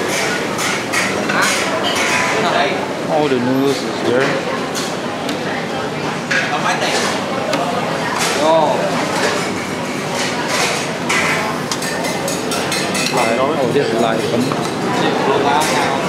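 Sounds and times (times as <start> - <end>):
background chatter: 0.0 - 16.0
utensils clinking on metal pots: 8.0 - 16.0.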